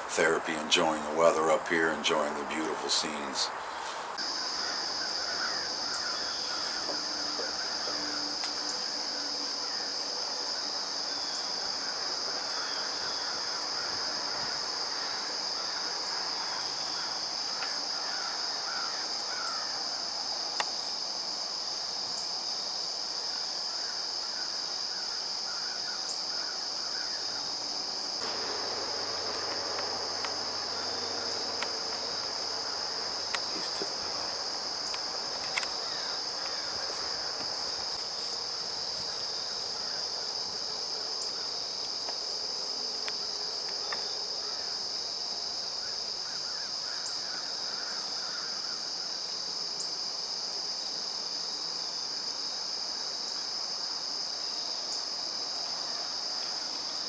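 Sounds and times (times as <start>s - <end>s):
crickets droning: 0.0s - 57.0s
bird calls: 4.6s - 8.8s, 28.2s - 37.5s.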